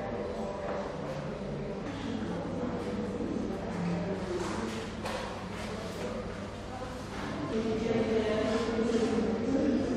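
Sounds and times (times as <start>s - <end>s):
murmur of voices: 0.0s - 9.9s.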